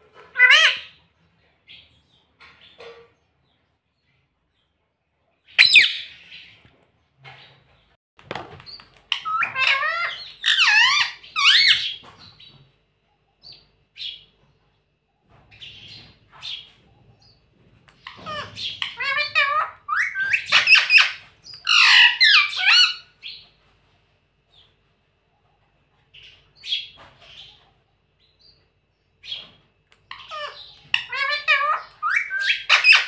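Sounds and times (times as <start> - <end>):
parakeet squawking: 0.0 - 1.0, 5.5 - 6.5, 9.1 - 12.1, 18.0 - 23.4, 30.1 - 33.0.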